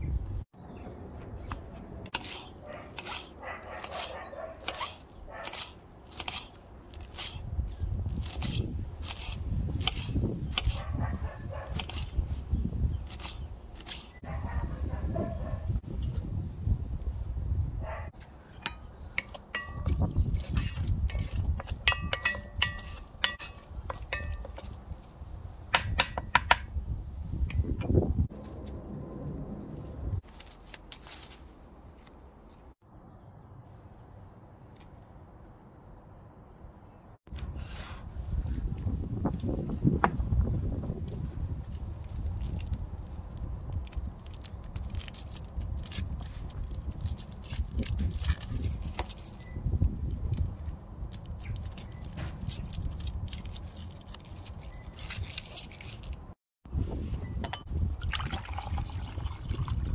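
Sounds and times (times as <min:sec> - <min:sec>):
scissors snipping: 0:01.4 - 0:07.5
knife chopping on wooden board: 0:25.7 - 0:26.7
leaves rustling: 0:29.7 - 0:32.8, 0:41.2 - 0:57.2.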